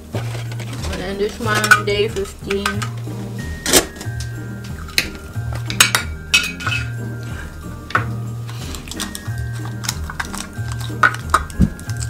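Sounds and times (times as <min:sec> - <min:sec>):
background music: 0:00.0 - 0:12.0
clicks and clinks of box: 0:07.9 - 0:12.0.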